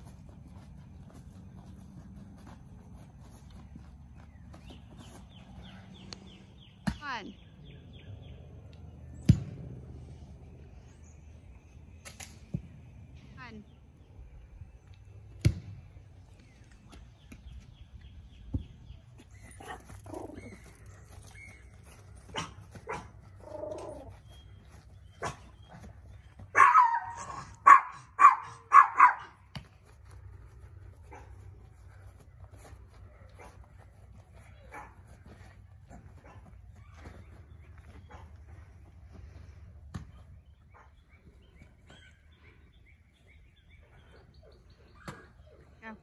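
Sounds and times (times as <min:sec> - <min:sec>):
dog barking: 0:22.3 - 0:23.1, 0:26.5 - 0:29.3.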